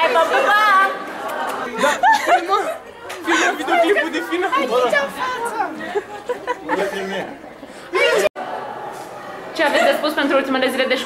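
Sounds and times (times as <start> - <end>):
several people talking: 0.0 - 11.0.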